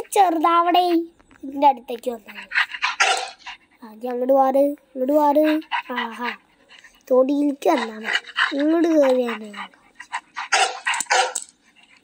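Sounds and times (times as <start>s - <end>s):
dog barking: 2.8s - 3.4s, 10.3s - 11.4s.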